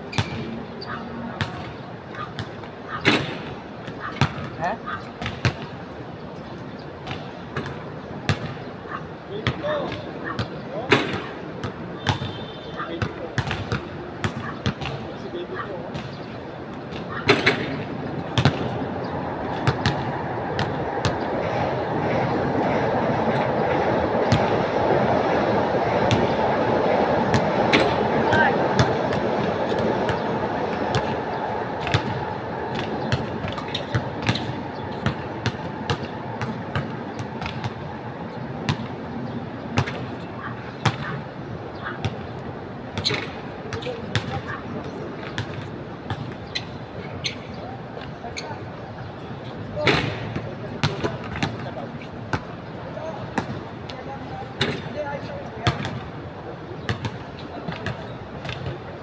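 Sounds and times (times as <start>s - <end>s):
basketballs bouncing on hard court: 0.1s - 0.5s, 1.4s - 1.7s, 2.4s - 5.7s, 9.4s - 15.1s, 16.9s - 18.8s, 19.6s - 21.6s, 30.9s - 31.2s, 31.8s - 37.8s, 39.7s - 40.2s, 43.0s - 46.6s, 49.9s - 52.5s, 55.6s - 56.0s, 56.8s - 58.8s
balls striking rim and backboard: 0.1s - 0.6s, 1.4s - 4.6s, 5.2s - 5.8s, 7.0s - 8.6s, 9.4s - 15.1s, 15.9s - 18.8s, 19.6s - 21.2s, 27.3s - 29.0s, 29.7s - 30.2s, 30.9s - 31.2s, 31.8s - 37.8s, 39.8s - 40.2s, 40.8s - 41.2s, 43.0s - 46.6s, 49.8s - 52.5s, 55.6s - 56.0s, 56.8s - 58.8s.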